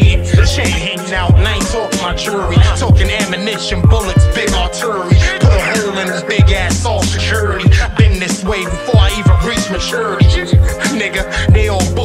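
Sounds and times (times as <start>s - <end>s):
kick drums: 0.0s - 0.6s, 1.3s - 1.6s, 2.6s - 3.2s, 3.8s - 4.4s, 5.1s - 5.7s, 6.4s - 6.6s, 7.7s - 8.2s, 9.0s - 9.4s, 10.2s - 10.8s, 11.5s - 11.7s
rapping over a beat: 0.0s - 12.0s.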